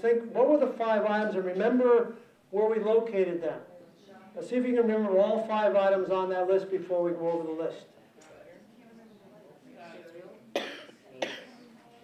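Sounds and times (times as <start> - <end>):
faint murmured voices: 6.6 - 12.0
sharp cough: 10.5 - 11.6.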